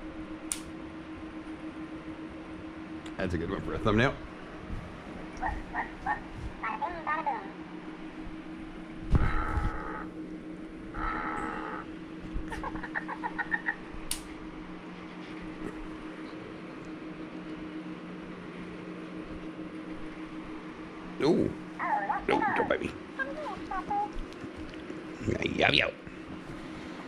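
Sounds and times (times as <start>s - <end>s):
steady low hum: 0.0s - 27.0s
fox chattering yips: 5.4s - 6.3s
fox whining: 5.4s - 6.3s, 9.1s - 10.1s, 10.9s - 13.8s.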